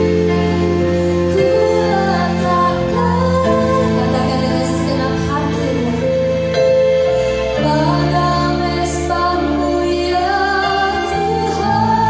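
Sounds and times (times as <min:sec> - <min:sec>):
person singing: 0:00.0 - 0:06.3
worship band playing slow song: 0:00.0 - 0:12.0.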